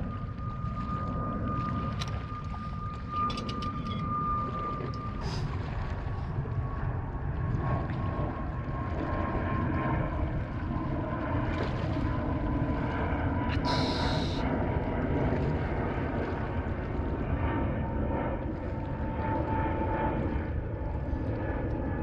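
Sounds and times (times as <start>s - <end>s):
distant engine drone: 0.0s - 22.0s.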